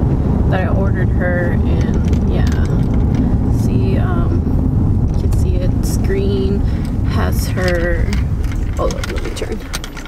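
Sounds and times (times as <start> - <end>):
road and engine rumble in cabin: 0.0 - 10.0.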